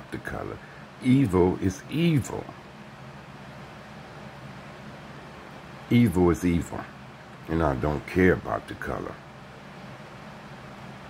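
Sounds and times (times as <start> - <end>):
even hiss: 0.0 - 11.0
steady low hum: 0.0 - 11.0.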